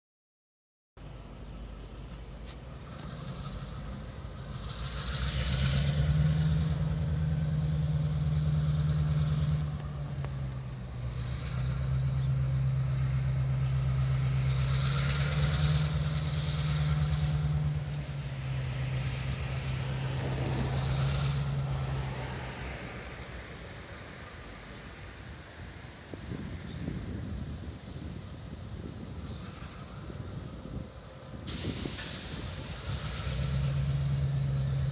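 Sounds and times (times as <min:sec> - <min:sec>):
diesel locomotive engine droning: 0:01.0 - 0:34.9.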